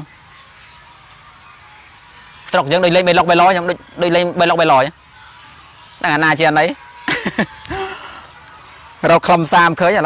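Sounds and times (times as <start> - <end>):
faint steady background noise: 0.0 - 10.0.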